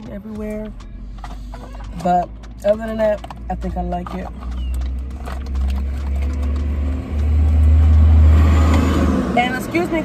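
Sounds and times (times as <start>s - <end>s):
passing vehicle rumble: 3.4s - 10.0s.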